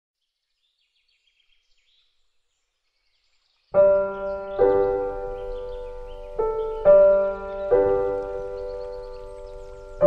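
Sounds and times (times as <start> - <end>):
faint bird chirps: 0.2 - 10.0
piano chord: 3.8 - 10.0.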